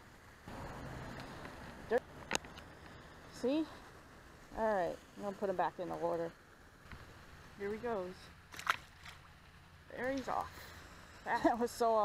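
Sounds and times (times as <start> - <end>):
fish splashing into water: 8.4 - 9.6.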